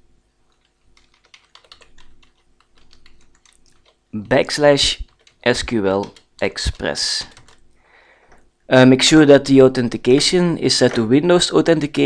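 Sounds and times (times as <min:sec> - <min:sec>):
computer keyboard typing: 0:00.5 - 0:07.7.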